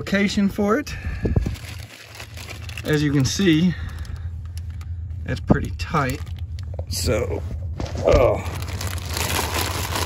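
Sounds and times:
low rumble: 0.4s - 10.0s
rustling and scraping: 4.4s - 10.0s.

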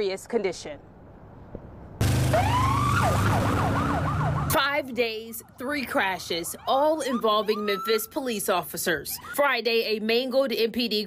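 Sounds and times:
emergency vehicle siren: 2.0s - 9.4s.

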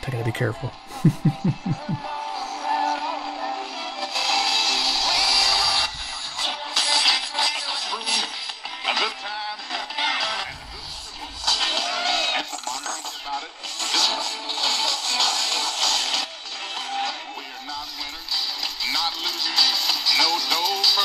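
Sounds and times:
music with singing on small radio: 0.0s - 21.0s
man laughing: 0.8s - 2.1s.

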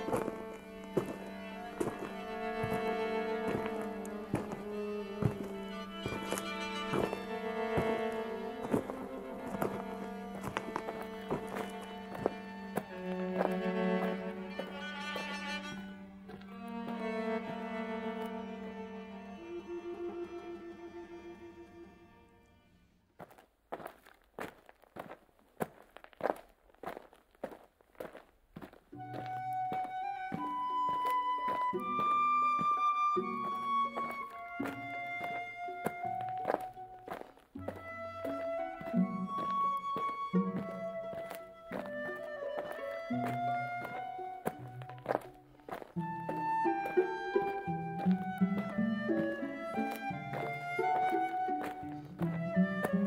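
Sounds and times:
chamber music for flute and strings: 0.0s - 23.0s, 28.1s - 53.0s.

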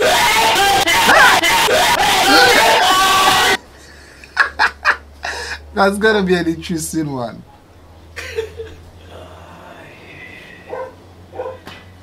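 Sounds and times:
dog barking: 10.7s - 11.7s.

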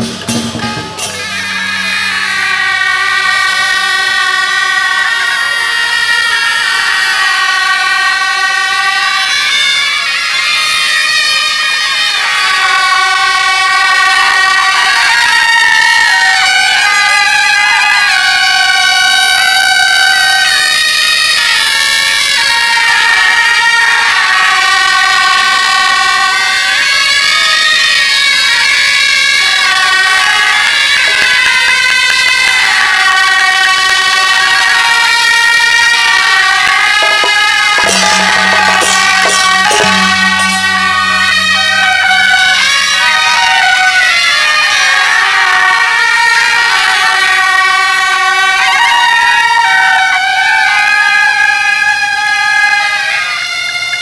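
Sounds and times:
shawm band playing: 0.0s - 3.5s, 36.6s - 43.3s
wind instruments playing melody: 0.0s - 20.7s, 21.3s - 49.8s.

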